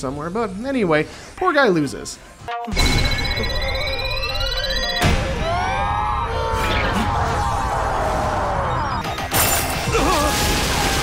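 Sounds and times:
electronic tones sweeping upward: 0:02.6 - 0:09.3.

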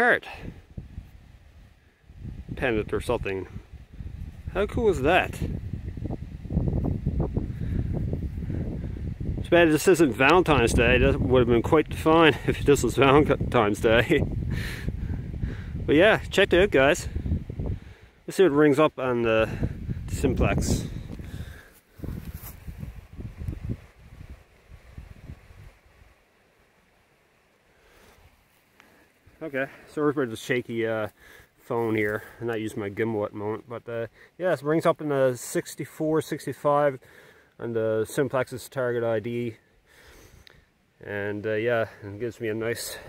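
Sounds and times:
wind buffeting microphone: 0:00.4 - 0:18.0, 0:19.4 - 0:26.2
rustling handling noise: 0:21.7 - 0:22.7.

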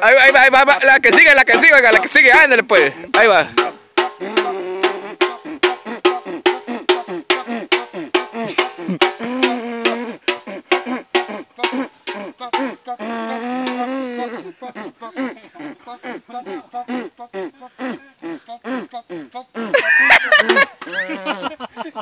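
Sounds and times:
men imitating brass with voices: 0:00.0 - 0:21.7.

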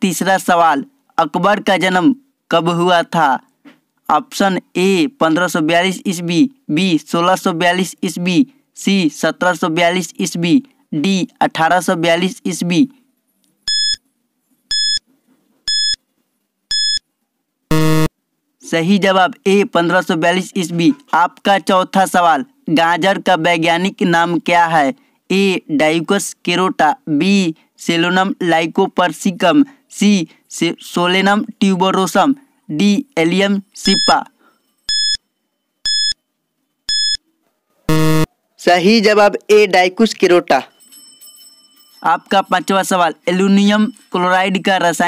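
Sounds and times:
short high electronic beeps: 0:13.7 - 0:14.0, 0:14.7 - 0:15.0, 0:15.7 - 0:16.0, 0:16.7 - 0:17.0, 0:17.7 - 0:18.1, 0:33.8 - 0:34.1, 0:34.9 - 0:35.2, 0:35.8 - 0:36.2, 0:36.9 - 0:37.2, 0:37.9 - 0:38.3
low buzzer tone: 0:17.7 - 0:18.1, 0:35.8 - 0:36.2, 0:36.9 - 0:37.2, 0:37.9 - 0:38.3.

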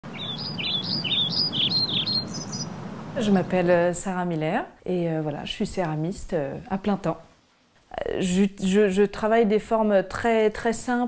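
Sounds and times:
small birds chirping: 0:00.0 - 0:03.6
low background hum: 0:00.1 - 0:09.0.

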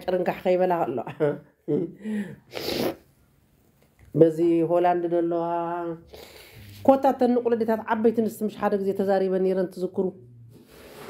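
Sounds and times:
sharp burst of breath: 0:02.0 - 0:03.0.

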